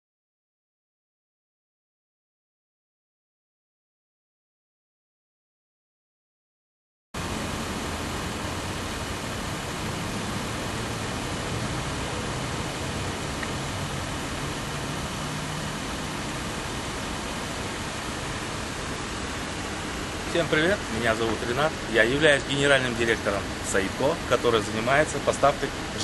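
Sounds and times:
steady background hiss: 7.2s - 26.0s.

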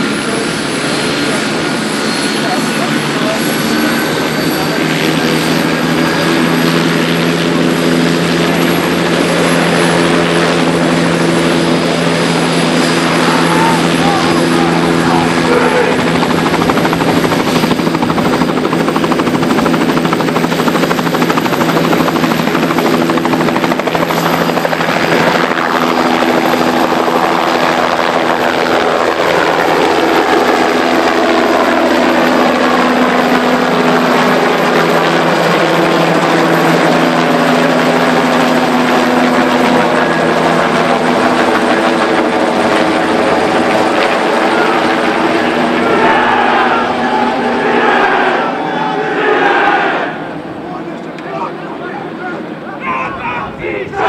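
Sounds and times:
helicopter rotor hum: 0.0s - 54.0s
turbine whine: 0.0s - 54.0s.

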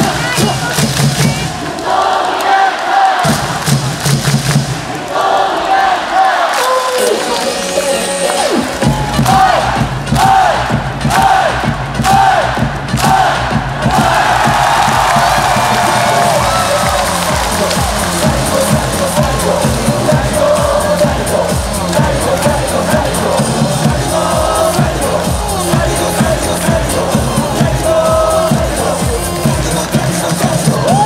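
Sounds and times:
loud amplified music: 0.0s - 2.2s, 2.9s - 5.0s, 5.7s - 31.0s
pounding beat: 0.0s - 2.4s, 3.1s - 5.9s, 8.0s - 31.0s
crowd chanting and singing: 0.0s - 31.0s
rhythmic shouted calls: 4.8s - 31.0s.

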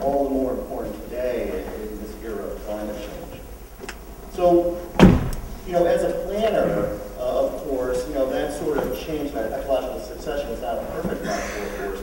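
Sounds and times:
sharp thump with low rumble: 5.0s - 5.8s.

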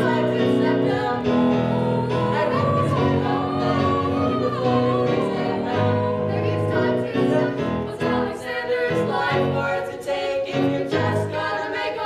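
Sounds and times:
group singing show tune: 0.0s - 12.0s.

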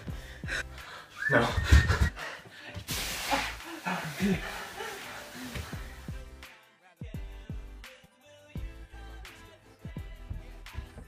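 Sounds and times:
person laughing: 1.3s - 2.2s.

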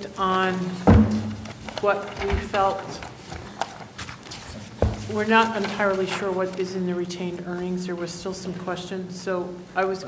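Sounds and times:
papers rustling: 0.0s - 6.8s
loud thump: 0.9s - 1.4s.

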